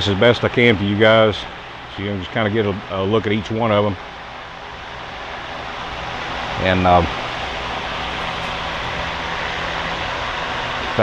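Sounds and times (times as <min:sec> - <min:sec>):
ventilation fan running: 0:00.0 - 0:11.0.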